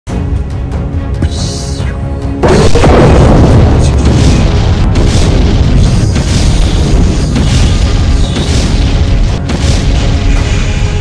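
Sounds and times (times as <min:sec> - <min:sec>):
music: 0:00.1 - 0:11.0
cinematic boom with low rumble: 0:02.4 - 0:10.8.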